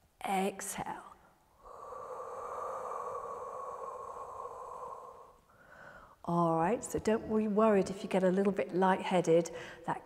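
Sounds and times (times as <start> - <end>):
woman exhaling: 1.6 - 6.2.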